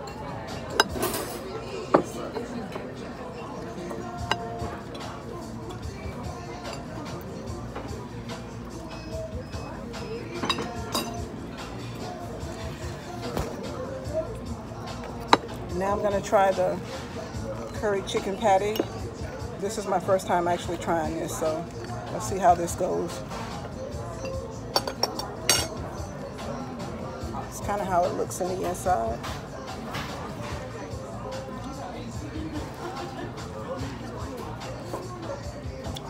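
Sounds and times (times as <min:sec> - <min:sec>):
tableware clinking: 0:00.0 - 0:05.8, 0:08.9 - 0:12.1, 0:17.6 - 0:19.2, 0:23.1 - 0:26.6
background music: 0:00.0 - 0:36.0
fork clinking on a dish: 0:10.3 - 0:11.2, 0:24.2 - 0:25.8.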